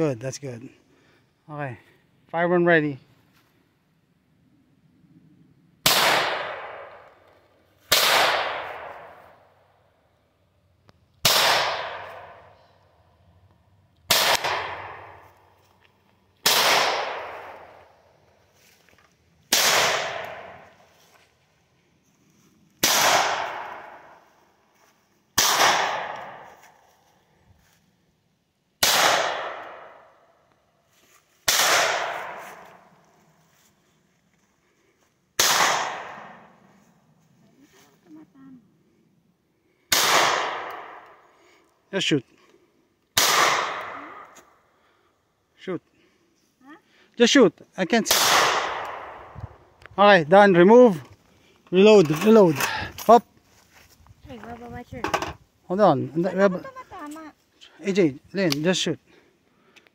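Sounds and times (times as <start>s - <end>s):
pistol shots with echo: 5.8s - 7.0s, 7.9s - 9.2s, 11.2s - 12.5s, 14.1s - 15.2s, 16.4s - 17.7s, 19.5s - 20.6s, 22.8s - 24.1s, 25.4s - 26.5s, 28.8s - 30.0s, 31.5s - 32.4s, 35.4s - 36.5s, 39.9s - 41.1s, 43.2s - 44.2s, 48.1s - 49.2s.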